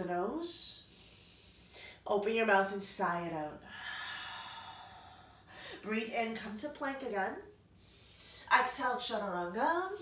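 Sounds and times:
woman speaking: 0.0s - 0.8s, 2.1s - 3.6s, 5.8s - 7.5s, 8.4s - 10.0s.

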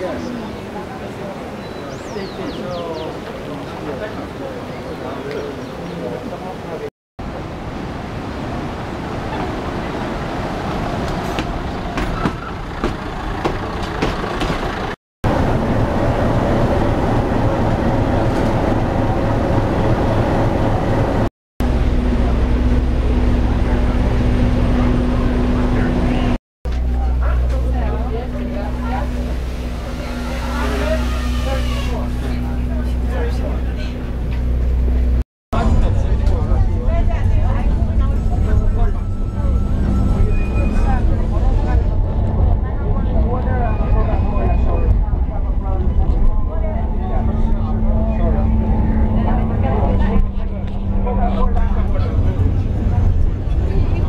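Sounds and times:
diesel train running in: 8.8s - 54.0s
diesel locomotive idling: 11.1s - 21.0s.

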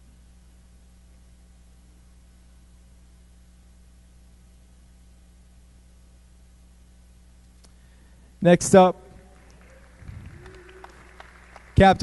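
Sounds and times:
low steady hum: 0.0s - 12.0s
distant voice: 9.4s - 12.0s.

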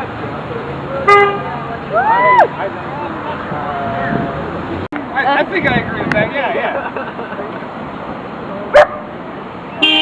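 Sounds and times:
street noise: 0.0s - 10.0s
car horn honk: 1.0s - 1.5s, 9.8s - 10.0s.

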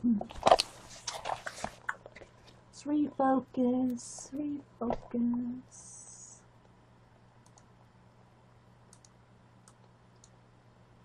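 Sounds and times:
low steady hum: 0.0s - 11.0s
faint sharp clicks: 7.4s - 7.7s, 8.9s - 10.4s.

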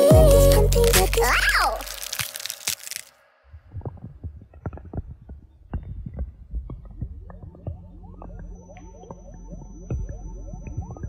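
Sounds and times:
song music: 0.0s - 1.9s
cracking and crunching effects: 0.6s - 3.2s.

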